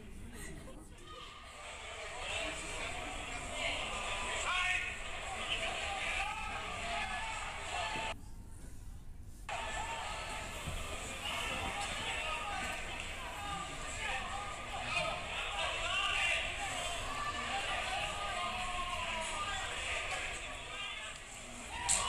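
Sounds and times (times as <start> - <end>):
stadium background noise: 0.0 - 22.0
players and crowd calling out: 1.0 - 8.2, 9.5 - 22.0.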